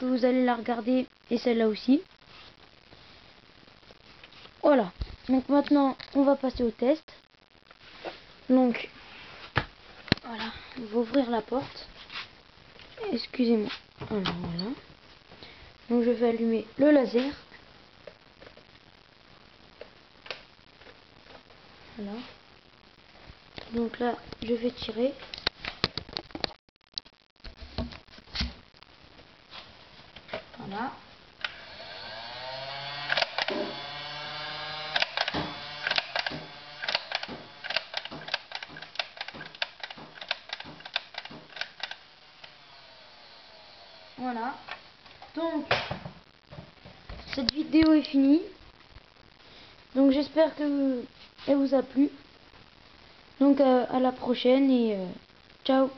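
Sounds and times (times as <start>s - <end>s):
toy blaster motors whining: 31.4s - 44.4s
plastic clicks and taps: 34.9s - 42.0s.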